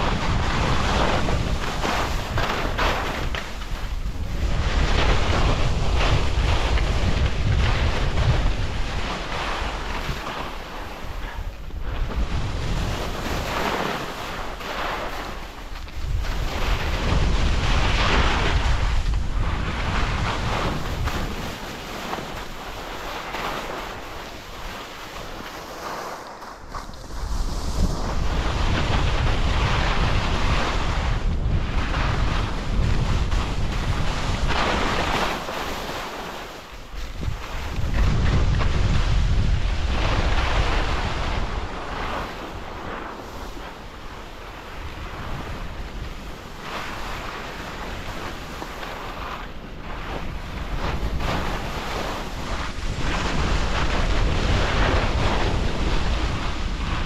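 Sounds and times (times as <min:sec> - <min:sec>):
skis scraping over snow: 0:00.0 - 0:57.0
wind buffeting microphone: 0:00.0 - 0:57.0.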